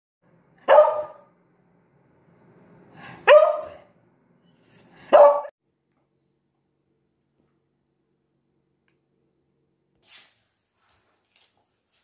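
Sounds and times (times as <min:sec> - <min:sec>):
dog barking: 0:00.6 - 0:01.3, 0:03.2 - 0:03.9, 0:05.0 - 0:05.5.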